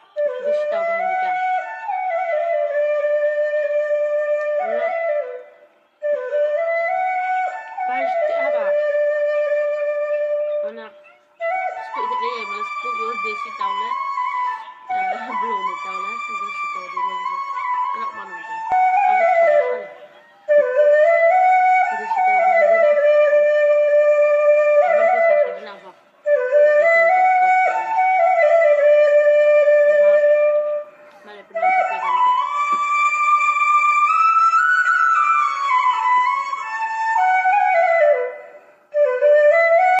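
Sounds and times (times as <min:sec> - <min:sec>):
flute playing slow melody: 0:00.0 - 0:40.0.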